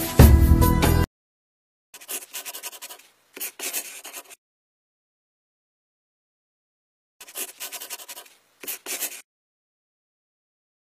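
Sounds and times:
marker scratching on whiteboard: 0:02.0 - 0:04.4, 0:07.2 - 0:09.3.

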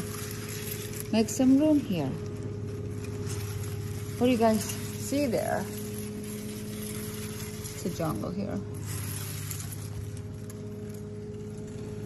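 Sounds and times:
machine hum: 0:00.0 - 0:12.0.

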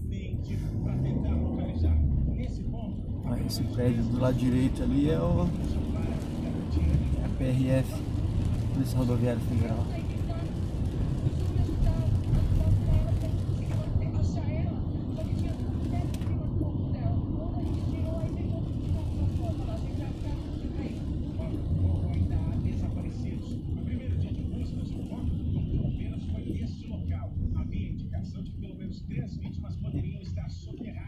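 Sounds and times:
car engine rumble: 0:00.0 - 0:31.0
tyres on wet road: 0:00.0 - 0:31.0.

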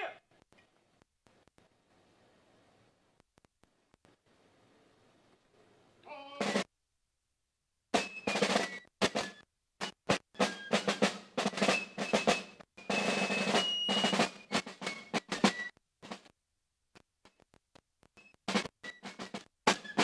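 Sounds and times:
snare drum rolls: 0:06.4 - 0:06.7, 0:08.0 - 0:16.3, 0:18.5 - 0:20.0.

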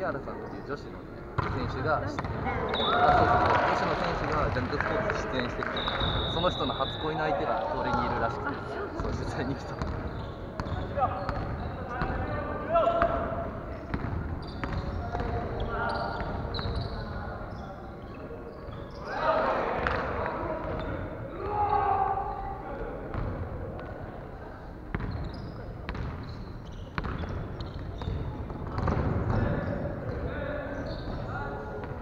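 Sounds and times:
players chatting and calling: 0:00.0 - 0:32.0
volleyballs hit and bouncing: 0:26.9 - 0:30.3.

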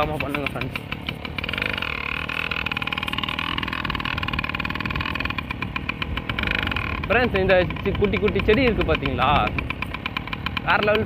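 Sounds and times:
small engine pulsing rumble: 0:00.0 - 0:11.0.

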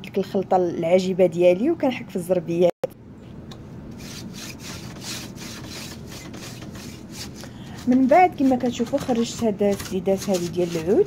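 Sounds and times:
scrubbing on wooden frame: 0:04.0 - 0:11.0.

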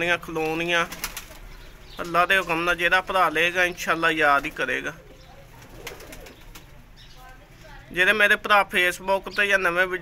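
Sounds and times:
pigeons cooing softly: 0:00.0 - 0:08.0.

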